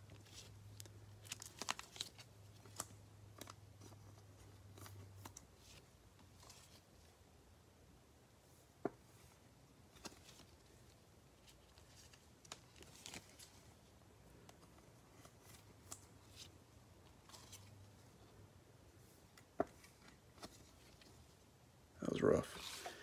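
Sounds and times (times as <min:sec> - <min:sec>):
trading cards rustling and clicking: 0:00.0 - 0:07.0, 0:09.2 - 0:18.2, 0:19.2 - 0:21.3.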